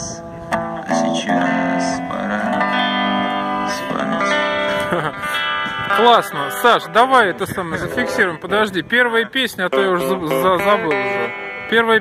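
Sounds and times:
electric guitar strummed chords: 0.0s - 12.0s.

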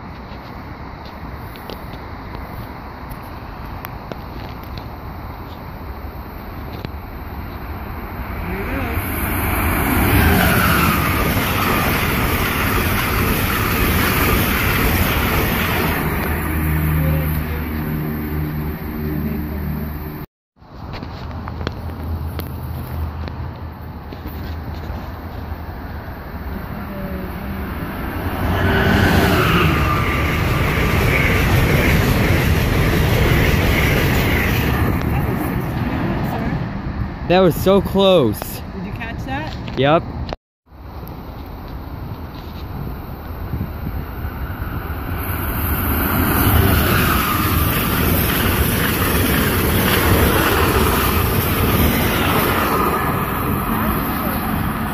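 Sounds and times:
train wheels rushing on rails: 6.6s - 20.2s, 24.8s - 37.9s, 41.2s - 54.9s.

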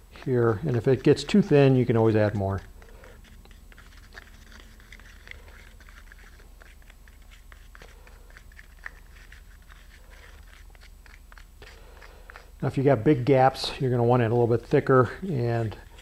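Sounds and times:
tool scraping and clicking in cup: 0.1s - 12.6s.

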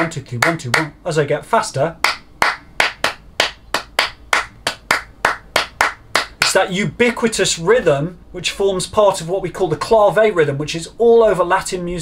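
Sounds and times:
rhythmic hand claps: 0.0s - 1.0s, 2.0s - 6.7s.

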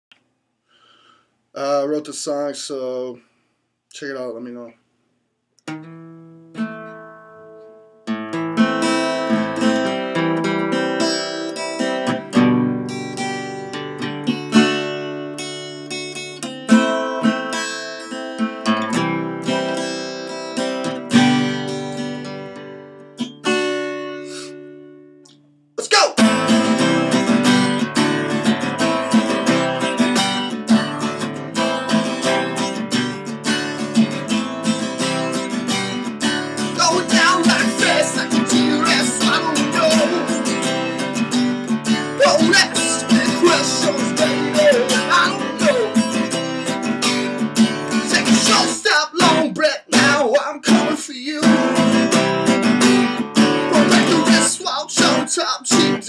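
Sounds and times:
acoustic guitar playing: 5.6s - 56.0s.

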